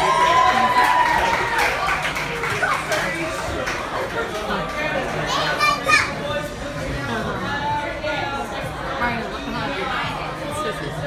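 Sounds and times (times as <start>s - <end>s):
restaurant chatter: 0.0s - 11.0s.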